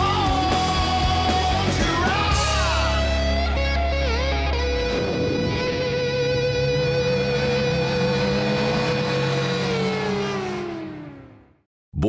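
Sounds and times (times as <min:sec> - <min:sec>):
motorcycle engine passing by: 0:04.9 - 0:11.6.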